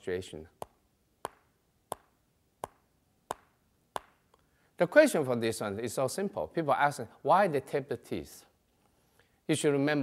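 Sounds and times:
teeth tapping clicks: 0.6s - 4.4s.

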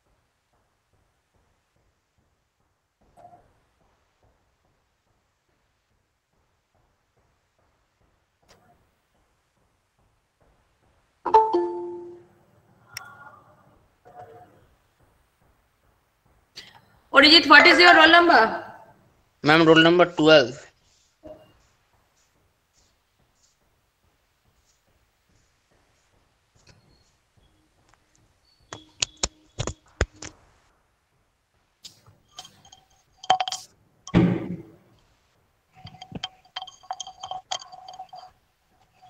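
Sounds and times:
sharp clicks and knocks: 28.7s - 30.4s, 31.8s - 34.7s, 35.8s - 39.0s.

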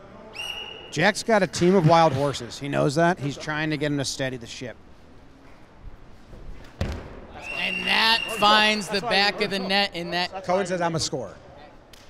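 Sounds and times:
ball striking thump: 6.8s - 7.3s.

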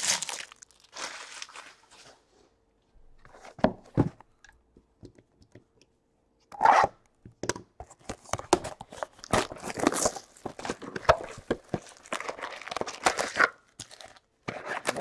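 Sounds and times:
loud ripping of packaging: 0.0s - 1.9s, 9.0s - 15.0s
plastic wrap and cardboard crinkling: 0.0s - 2.3s, 8.2s - 15.0s.

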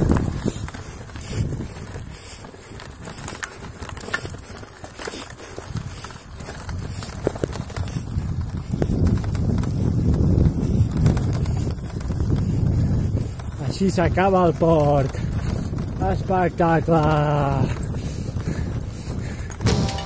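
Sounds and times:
vehicle rumble on gravel: 0.0s - 17.8s
stones clicking under tyres: 0.0s - 20.0s
wind buffeting microphone: 0.0s - 20.0s.

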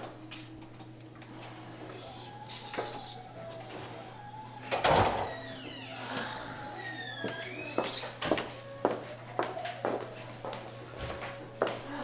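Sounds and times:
music playing: 0.0s - 12.0s
sliding door rolling open: 3.6s - 8.2s.

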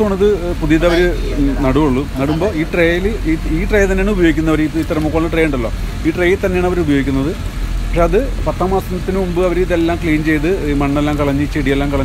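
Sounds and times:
man talking: 0.0s - 12.0s
steady low hum: 0.0s - 12.0s.

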